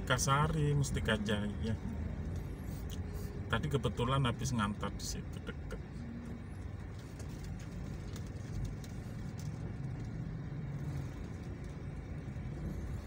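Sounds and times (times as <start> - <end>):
car engine and tyres rumbling: 0.0 - 13.0.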